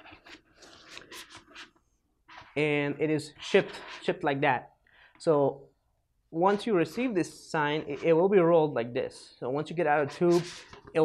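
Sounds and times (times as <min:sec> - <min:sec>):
plastic sign rustling and scraping: 0:00.0 - 0:04.2, 0:10.0 - 0:11.0.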